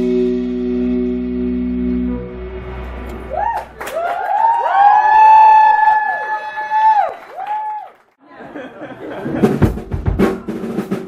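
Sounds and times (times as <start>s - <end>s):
audience whooping and cheering: 3.1s - 8.2s.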